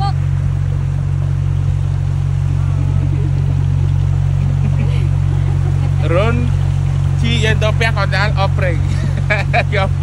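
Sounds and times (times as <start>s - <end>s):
motorboat engine droning: 0.0s - 10.0s.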